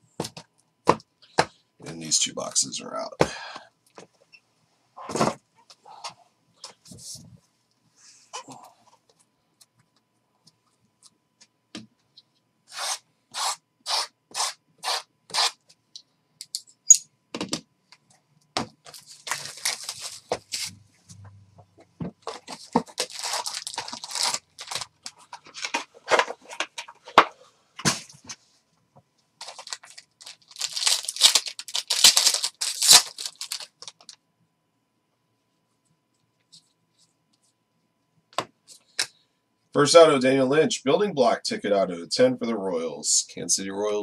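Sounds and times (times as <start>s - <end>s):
foil packs tearing: 18.8s - 20.7s, 22.2s - 25.1s, 29.4s - 34.0s.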